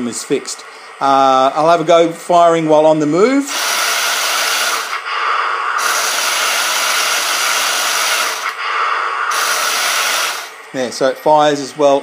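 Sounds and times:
toy tank motors whirring: 3.5s - 5.0s, 5.8s - 8.6s, 9.3s - 10.5s.

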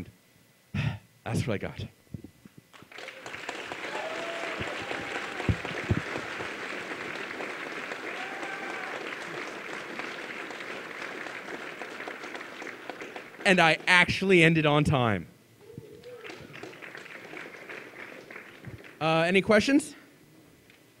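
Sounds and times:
audience applauding: 2.7s - 14.1s, 16.0s - 19.0s.

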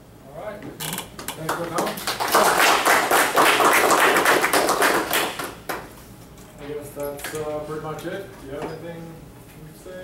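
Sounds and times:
audience applause: 1.8s - 5.6s.

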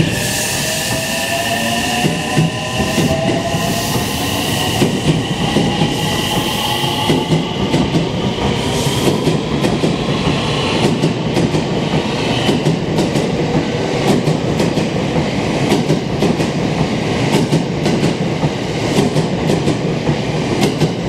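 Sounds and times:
train running rumble: 0.0s - 21.0s.

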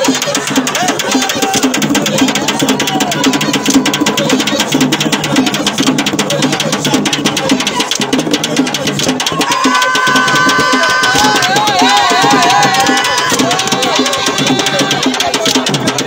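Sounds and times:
fast hand drumming: 0.0s - 16.0s
voices chanting: 0.0s - 16.0s.

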